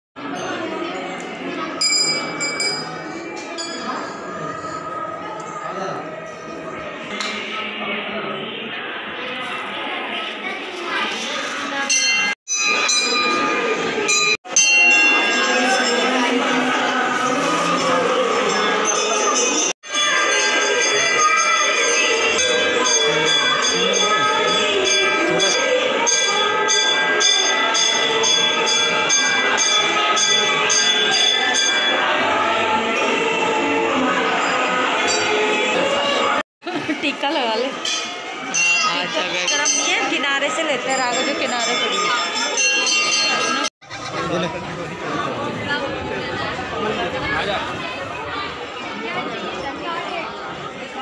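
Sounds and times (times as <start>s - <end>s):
indistinct crowd voices: 0.2s - 51.0s
metal temple bells ringing: 1.7s - 4.9s, 11.9s - 32.2s, 37.8s - 44.2s.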